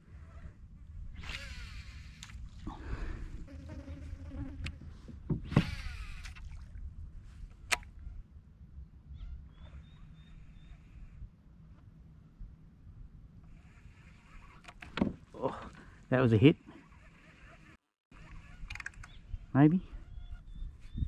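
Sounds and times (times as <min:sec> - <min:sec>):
fishing reel whirring: 0:01.2 - 0:02.4, 0:05.6 - 0:06.4, 0:13.5 - 0:14.8
reel winding whine: 0:01.2 - 0:02.4, 0:05.5 - 0:06.4
sharp clicks: 0:18.6 - 0:19.2.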